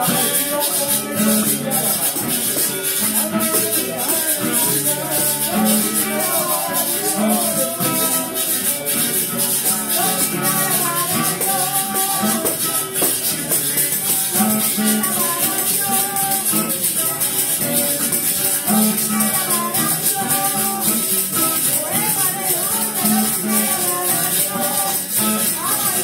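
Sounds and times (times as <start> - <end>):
plucked string melody: 0.0 - 26.0
shaker rhythm: 0.0 - 26.0.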